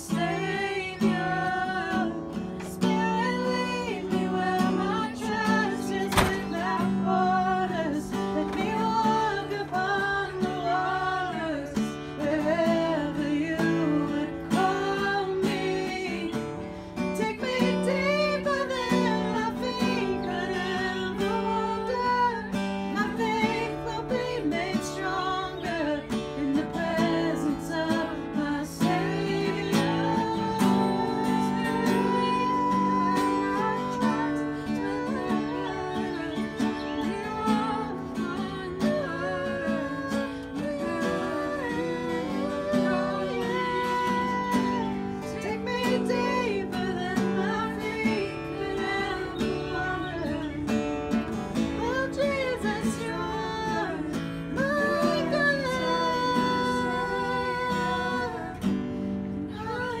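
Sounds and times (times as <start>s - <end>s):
acoustic guitar strumming: 0.0s - 60.0s
woman singing: 0.0s - 60.0s.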